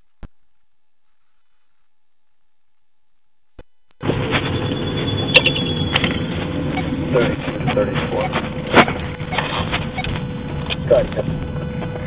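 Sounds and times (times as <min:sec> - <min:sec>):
faint electrical tone: 0:00.0 - 0:07.3
car engine and road rumble: 0:04.0 - 0:12.0.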